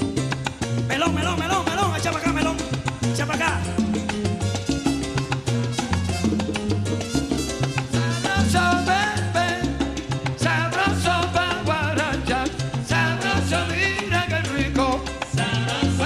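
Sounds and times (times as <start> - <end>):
bass line: 0.0 - 16.0
hand percussion: 0.0 - 16.0
wavering lead melody: 1.0 - 9.1.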